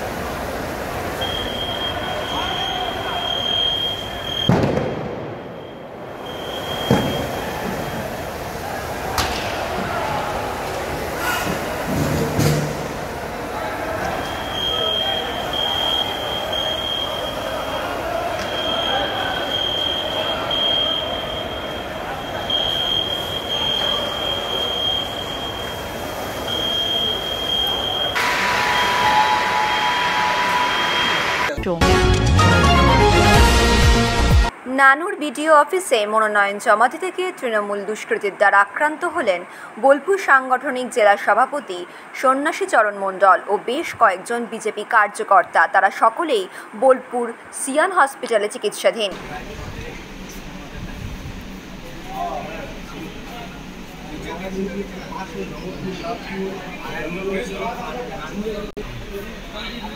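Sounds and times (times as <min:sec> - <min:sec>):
noisy hubbub: 0:00.0 - 0:33.3, 0:34.5 - 0:59.9
sharp cracks: 0:04.4 - 0:05.5
loud hiss: 0:14.2 - 0:31.5
fire rushing noise: 0:28.1 - 0:31.6.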